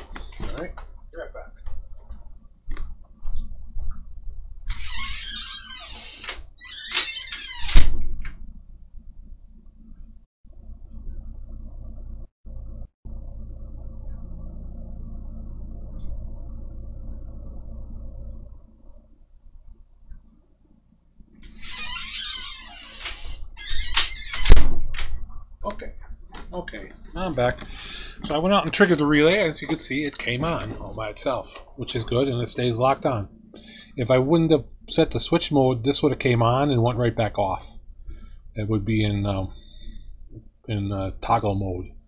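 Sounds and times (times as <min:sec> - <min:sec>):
steady low hum: 0:00.0 - 0:06.7, 0:07.7 - 0:42.0
door opening and shutting: 0:04.6 - 0:08.4, 0:21.4 - 0:25.4.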